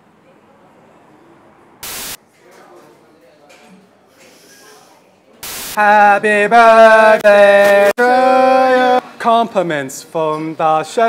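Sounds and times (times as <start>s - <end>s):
faint cafe chatter: 0.0s - 11.0s
loud static hiss: 1.8s - 2.2s, 5.4s - 5.9s.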